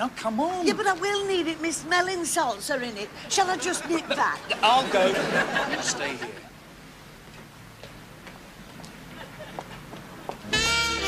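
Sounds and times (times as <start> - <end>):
low steady hiss: 0.0 - 11.0
footsteps on stone paving: 7.2 - 10.5.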